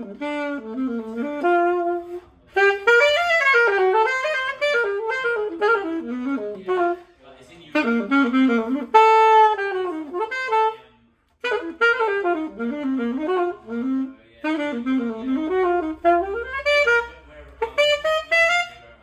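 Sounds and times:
alto saxophone melody: 0:00.0 - 0:19.0.

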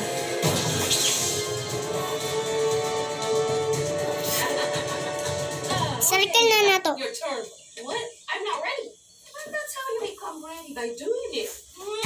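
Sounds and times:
child speaking: 0:06.0 - 0:07.1.

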